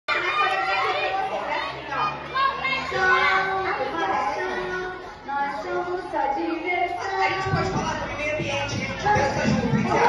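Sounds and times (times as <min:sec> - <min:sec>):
chatter of voices: 0:00.1 - 0:10.0.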